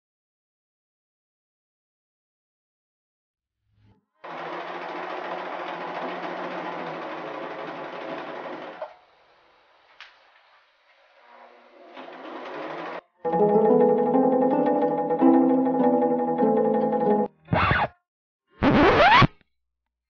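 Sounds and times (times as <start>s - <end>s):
sewing machine running: 4.2s - 8.9s, 11.8s - 13.1s
music: 13.2s - 17.4s.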